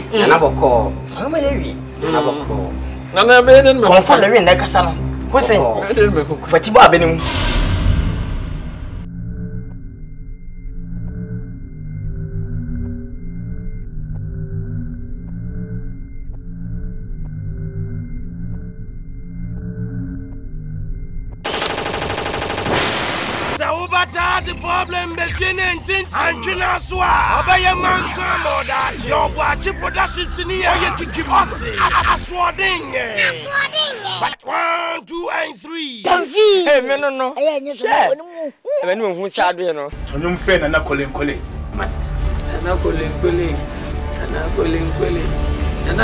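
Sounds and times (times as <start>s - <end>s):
crickets trilling: 0.0s - 7.3s, 23.6s - 33.2s
rapid automatic gunfire: 21.5s - 23.6s
man murmuring: 26.1s - 33.2s, 37.9s - 39.1s.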